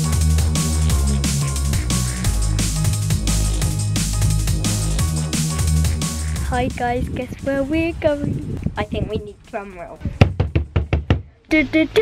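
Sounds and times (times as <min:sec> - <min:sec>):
makeshift drumroll knocks: 0:10.1 - 0:11.2.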